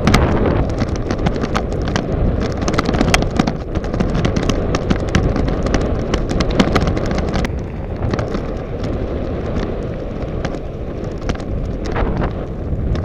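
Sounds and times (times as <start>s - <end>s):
bike clicking and rattling: 0.0s - 13.0s
wind rumble on microphone: 0.0s - 13.0s.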